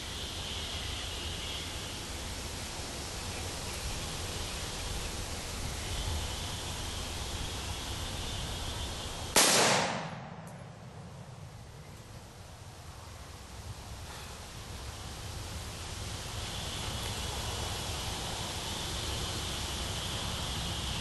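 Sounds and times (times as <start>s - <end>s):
high insect drone: 0.0s - 9.4s, 10.8s - 21.0s
outdoor background noise: 0.0s - 21.0s
rifle shot: 9.4s - 10.8s.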